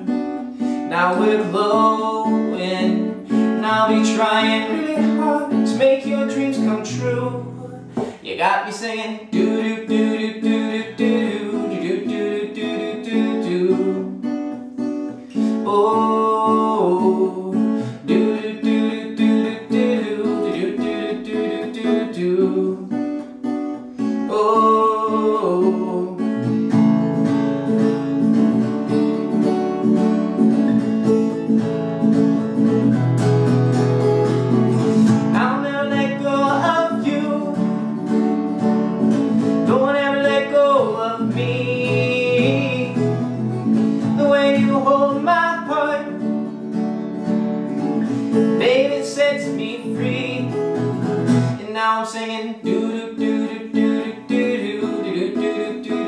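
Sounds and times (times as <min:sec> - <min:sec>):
man's wordless vocal melody: 0:00.0 - 0:14.6, 0:15.2 - 0:23.2, 0:23.8 - 0:27.8, 0:34.4 - 0:46.9, 0:47.7 - 0:56.0
acoustic guitar strumming: 0:00.0 - 0:56.0.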